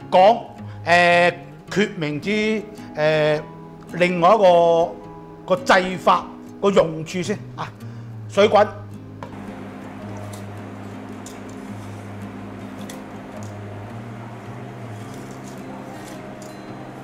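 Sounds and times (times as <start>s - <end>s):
soft background music: 0.0s - 17.0s
water boiling in a pot: 9.4s - 17.0s.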